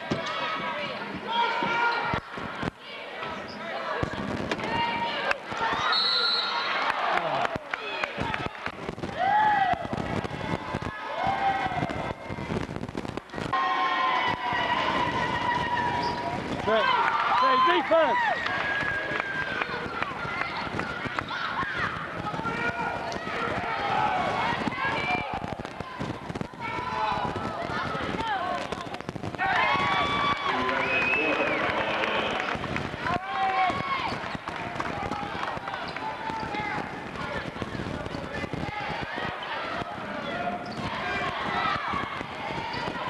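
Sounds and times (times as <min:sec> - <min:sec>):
spectators talking and calling out: 0:00.0 - 0:43.0
sneakers squeaking on court: 0:15.9 - 0:16.4, 0:40.2 - 0:40.9.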